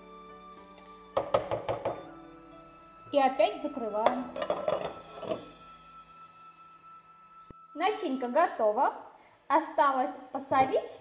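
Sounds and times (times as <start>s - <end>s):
faint background music: 0.0s - 11.0s
steady high thin tone: 2.0s - 9.1s.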